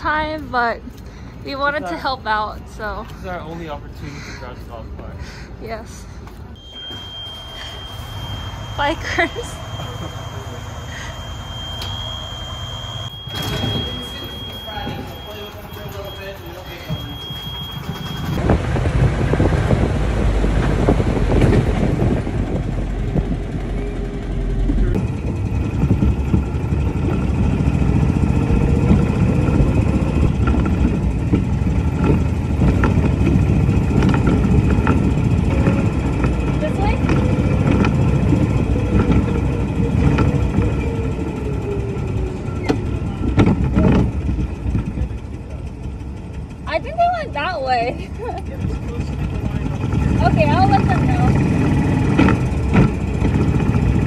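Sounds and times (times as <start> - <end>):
golf cart rolling noise: 6.6 - 54.0
wind buffeting microphone: 17.8 - 24.3, 24.9 - 44.6.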